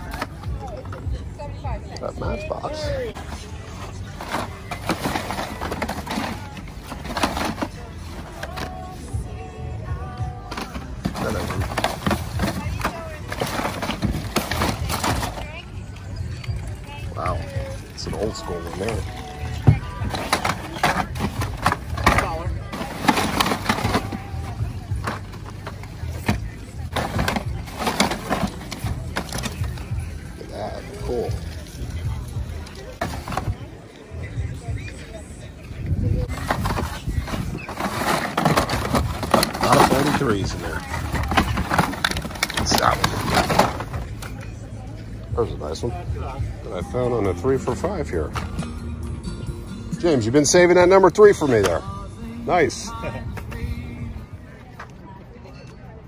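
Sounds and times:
background music: 0:00.0 - 0:56.0
plastic packaged toy cars clattering: 0:03.1 - 0:09.0, 0:10.4 - 0:15.6, 0:17.2 - 0:31.8, 0:32.4 - 0:33.6, 0:36.2 - 0:44.6.

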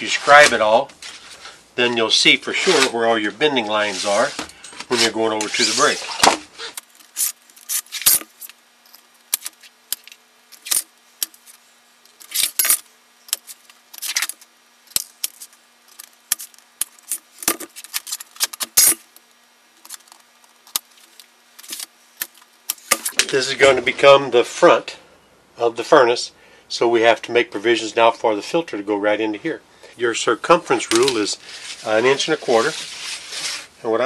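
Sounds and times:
faint steady hum: 0:00.0 - 0:34.0
scribe scratching sheet metal: 0:02.5 - 0:02.9, 0:03.8 - 0:08.4, 0:15.2 - 0:19.1, 0:31.6 - 0:33.7.

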